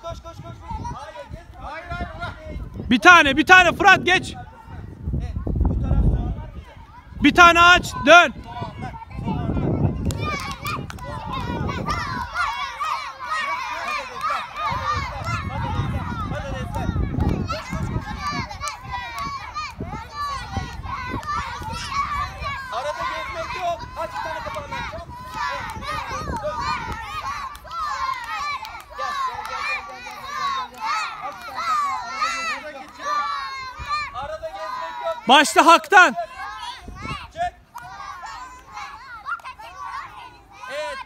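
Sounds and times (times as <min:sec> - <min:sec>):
children calling and chattering: 0:00.0 - 0:41.0.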